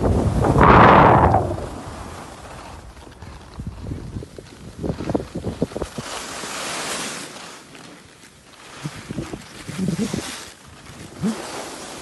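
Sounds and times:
knocks and scrapes on snow: 0:00.0 - 0:12.0
wind and snow hiss: 0:00.0 - 0:12.0.

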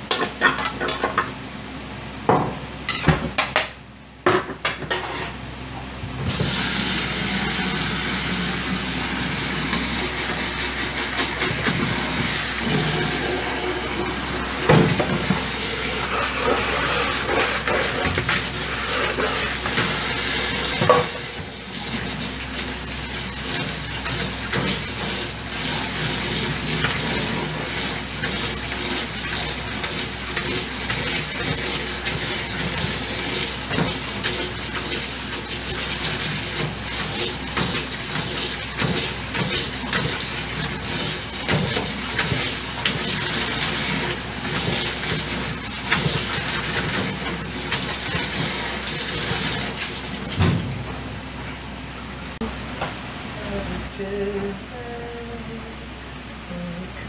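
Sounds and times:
tap water running into a colander: 0:06.3 - 0:50.9.

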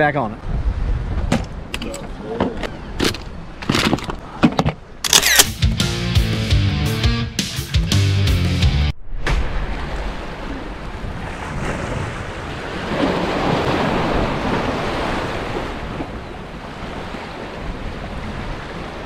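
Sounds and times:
wind buffeting microphone: 0:00.4 - 0:04.2, 0:09.4 - 0:19.0
surf breaking against rocks: 0:09.1 - 0:16.3.

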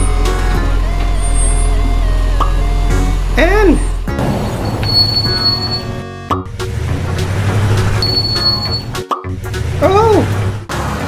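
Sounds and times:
children's background music: 0:00.0 - 0:11.0.

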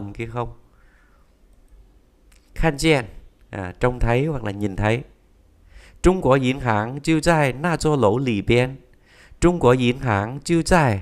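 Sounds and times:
man speaking: 0:00.0 - 0:00.6, 0:02.5 - 0:05.2, 0:06.0 - 0:11.0.

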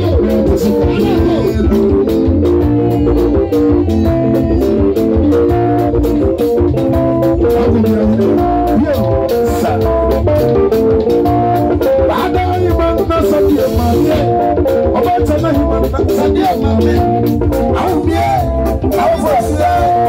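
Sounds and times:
bass line: 0:00.0 - 0:20.0
guitar lines: 0:00.0 - 0:20.0
steady drum beat: 0:00.0 - 0:20.0.

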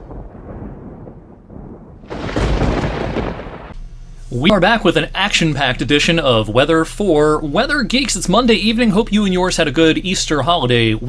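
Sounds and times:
thunder rumble and clap: 0:00.0 - 0:03.8.

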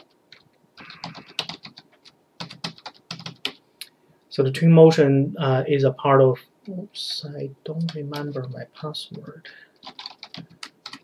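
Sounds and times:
typing on computer keyboard: 0:00.0 - 0:03.6, 0:09.1 - 0:11.0.

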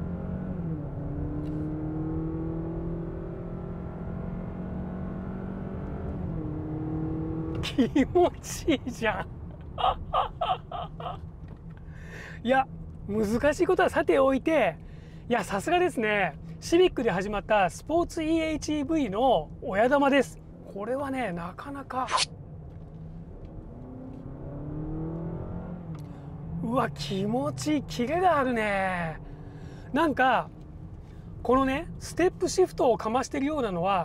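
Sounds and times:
car engine accelerating: 0:00.0 - 0:07.8, 0:22.5 - 0:28.5
car cabin road hum: 0:05.8 - 0:24.5, 0:25.8 - 0:34.0
man laughing: 0:07.6 - 0:11.3.

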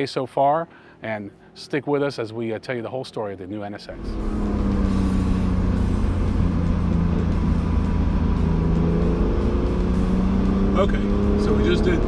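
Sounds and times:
car engine droning: 0:03.8 - 0:12.0.

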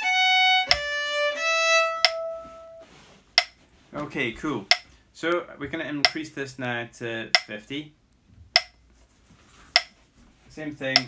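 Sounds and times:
metronome clicking: 0:00.0 - 0:02.8, 0:03.4 - 0:03.6, 0:08.6 - 0:08.8.

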